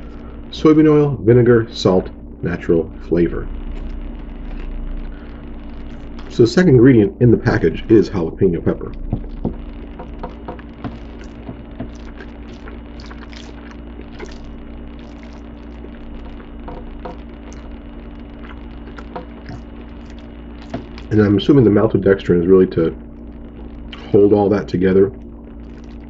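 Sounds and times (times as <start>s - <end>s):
low hum: 0.0s - 26.0s
wet chewing: 3.7s - 5.1s, 9.2s - 17.8s, 18.4s - 21.1s, 25.6s - 26.0s.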